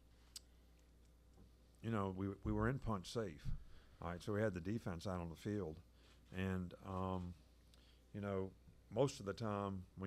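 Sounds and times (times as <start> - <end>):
faint room hum: 0.0 - 10.0
man speaking: 1.8 - 7.5, 8.1 - 10.0.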